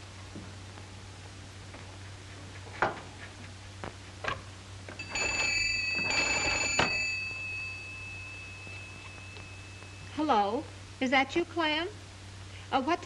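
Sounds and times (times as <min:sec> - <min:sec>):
telephone bell ringing: 0:05.0 - 0:10.2.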